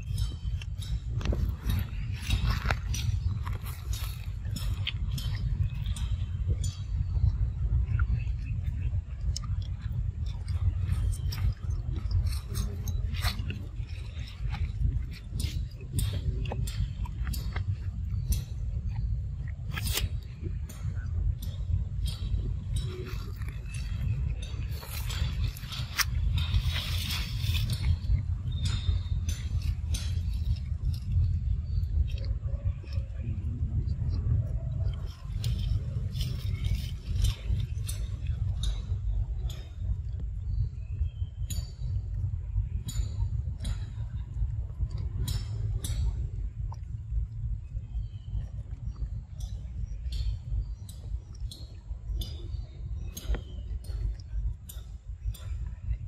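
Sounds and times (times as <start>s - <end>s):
low rumble: 0.0s - 56.0s
monkey chewing: 0.3s - 6.6s, 9.2s - 20.3s, 22.7s - 38.8s.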